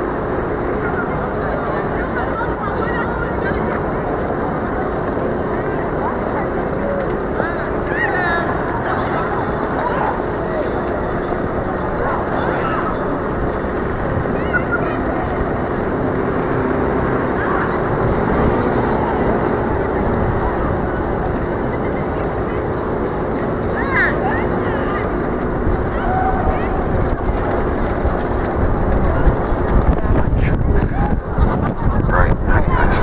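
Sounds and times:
constant outdoor noise: 0.0s - 33.0s
faint voices of passers-by: 0.0s - 33.0s
traffic noise: 0.0s - 33.0s.

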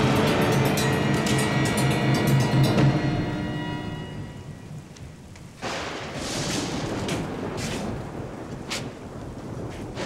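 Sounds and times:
dramatic music: 0.0s - 4.9s.

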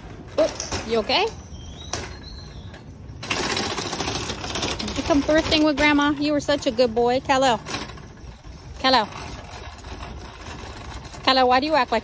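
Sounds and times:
shopping cart rattling over pavement: 0.0s - 12.0s.

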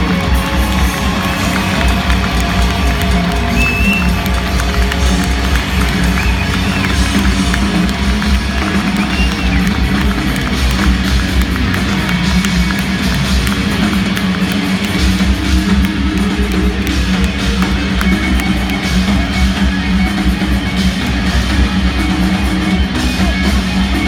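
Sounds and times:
live rock band in arena: 0.0s - 24.0s.

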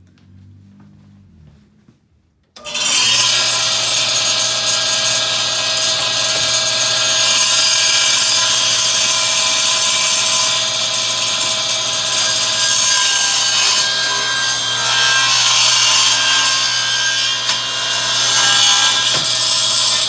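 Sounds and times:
circular saw cutting wood: 2.6s - 20.0s.

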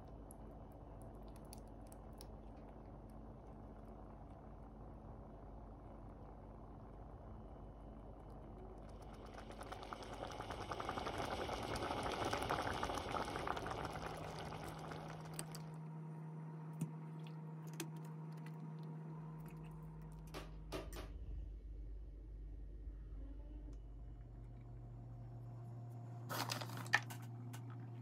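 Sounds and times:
low steady hum: 0.0s - 28.0s.

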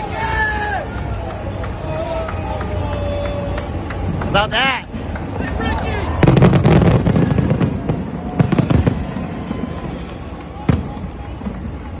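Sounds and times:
fireworks crackling and popping: 0.6s - 12.0s
firework bang: 6.2s - 10.0s.

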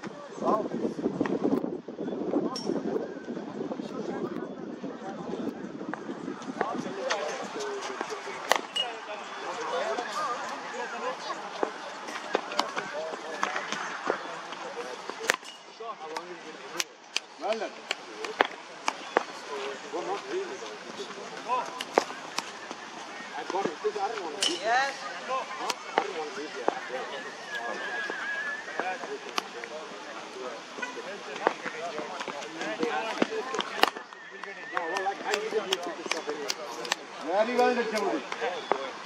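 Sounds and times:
distant voices: 4.4s - 39.0s.

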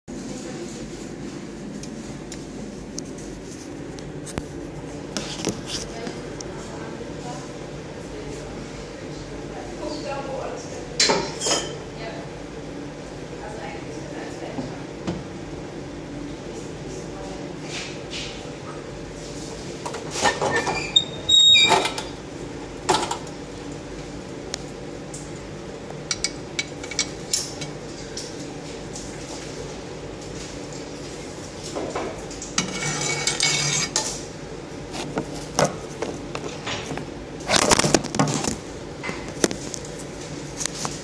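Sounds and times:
steady hum: 0.1s - 41.0s
metal scrape: 32.6s - 34.1s.

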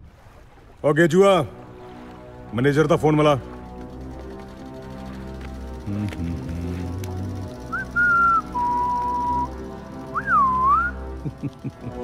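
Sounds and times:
background music: 0.7s - 12.0s
whistled tune: 7.6s - 11.3s.

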